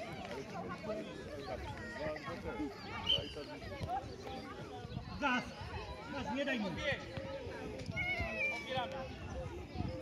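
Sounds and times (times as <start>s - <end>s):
voices on pitch: 0.0s - 10.0s.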